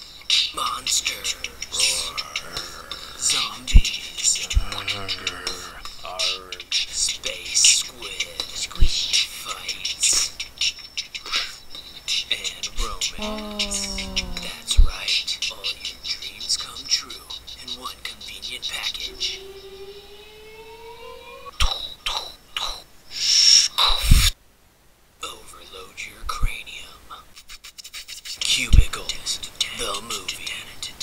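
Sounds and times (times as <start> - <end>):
beatboxing hi-hat hisses: 0.0 - 19.5, 23.1 - 24.4, 27.3 - 31.0
beatboxing kick-drum thump: 1.7 - 6.4, 8.8 - 9.2
hummed rising tone: 13.2 - 14.9, 19.2 - 21.5.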